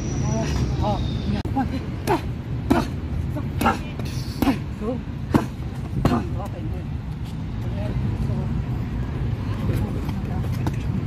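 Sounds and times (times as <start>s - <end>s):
road traffic rumble: 0.0s - 11.0s.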